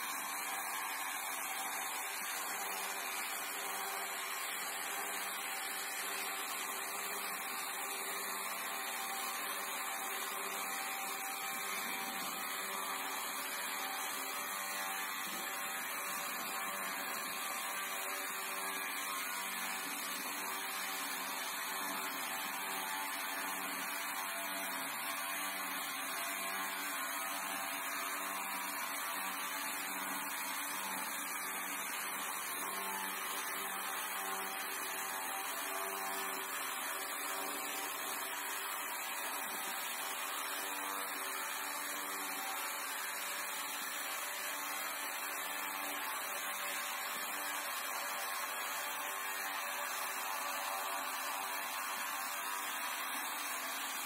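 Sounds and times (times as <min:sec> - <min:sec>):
electric chainsaw cutting log: 0:00.0 - 0:54.0.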